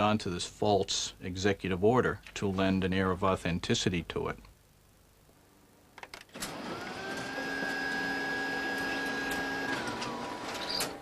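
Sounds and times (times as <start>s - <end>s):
electric motor whining: 6.5s - 11.0s.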